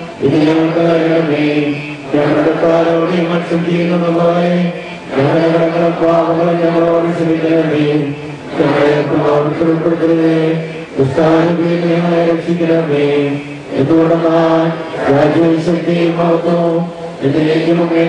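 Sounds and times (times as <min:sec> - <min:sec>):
men chanting prayers in unison: 0:00.0 - 0:18.0.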